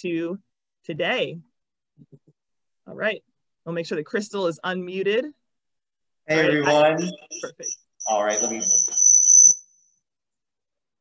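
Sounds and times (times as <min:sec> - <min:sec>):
high-pitched whine: 0:06.5 - 0:09.7.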